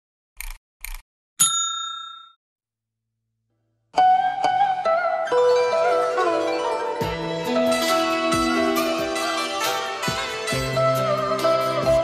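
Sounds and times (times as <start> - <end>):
bright bell-like ding: 1.4 - 2.4.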